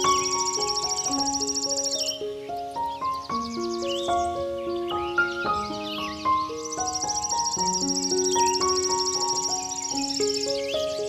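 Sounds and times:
insects trilling: 0.0 - 11.0
slow piano music: 0.0 - 11.0.

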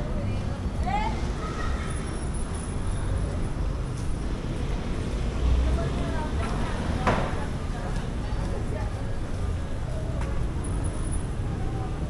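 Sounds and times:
faint voices of people: 0.0 - 4.5, 5.1 - 12.0
low rumble of road traffic: 0.0 - 12.0.

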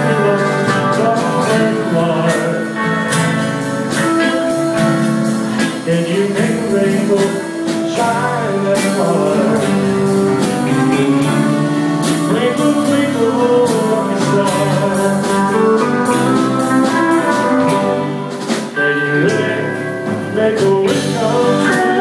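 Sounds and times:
live country band playing: 0.0 - 22.0
cymbals marking a beat: 0.1 - 19.4.

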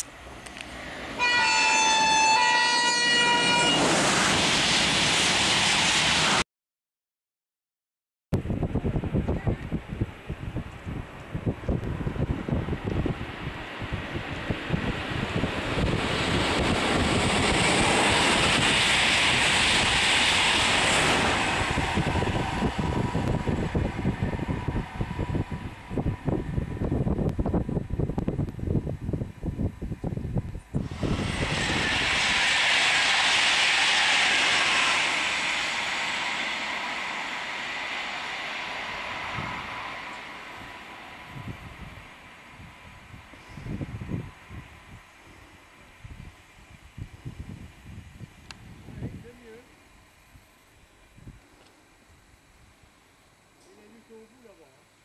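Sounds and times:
high-speed train passing: 0.0 - 6.4, 8.4 - 55.0
wind buffeting microphone: 8.4 - 49.6, 51.1 - 51.5.

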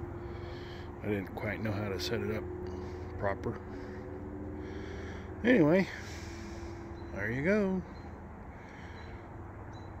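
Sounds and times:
faint steady hum: 0.0 - 10.0
faint high chirp: 8.8 - 10.0.

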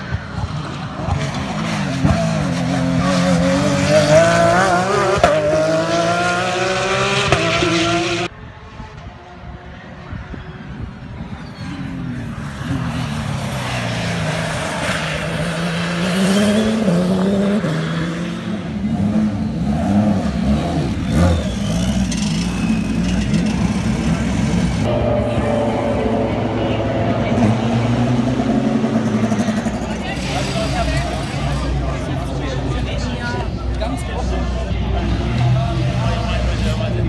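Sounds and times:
race car engines running: 0.0 - 37.0
race car passing at speed: 0.0 - 37.0
people talking: 21.1 - 37.0.

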